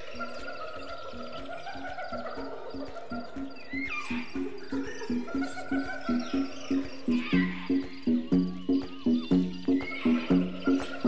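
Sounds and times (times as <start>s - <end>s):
music with steady beat: 1.8s - 11.0s.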